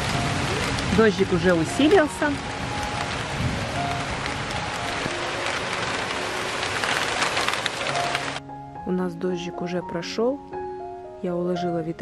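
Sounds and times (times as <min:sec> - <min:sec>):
heavy rain falling: 0:00.0 - 0:08.4.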